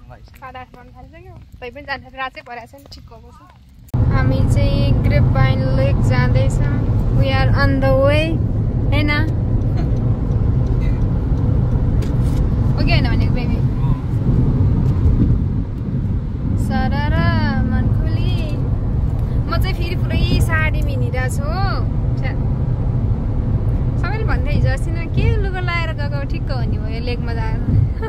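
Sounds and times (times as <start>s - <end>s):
car cabin road and engine rumble: 0.0s - 28.0s.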